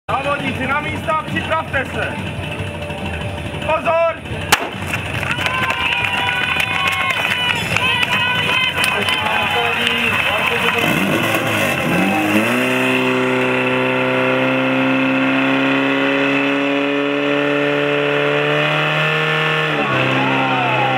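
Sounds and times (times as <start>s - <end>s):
fire pump engine revving: 0.6s - 20.9s
spectators shouting and cheering: 4.6s - 14.1s, 19.5s - 20.9s.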